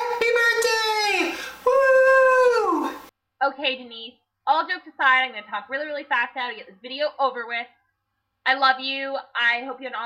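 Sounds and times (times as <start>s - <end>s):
man singing in falsetto: 1.6s - 3.1s.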